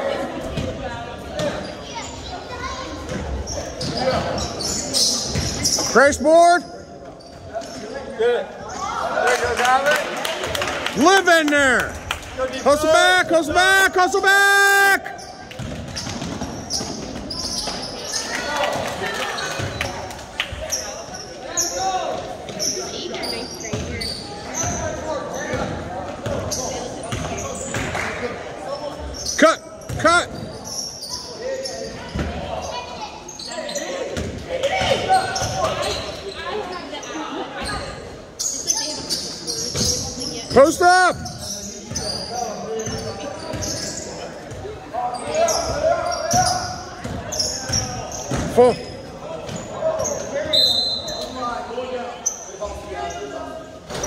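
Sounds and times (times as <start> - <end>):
sneaker squeaks: 1.4 - 8.9, 15.1 - 18.6, 19.2 - 20.1, 20.7 - 28.0, 28.7 - 54.0.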